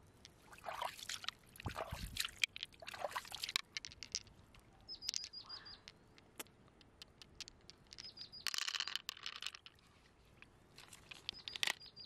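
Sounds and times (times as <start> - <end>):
pearls clicking against shell: 5.0 - 9.8.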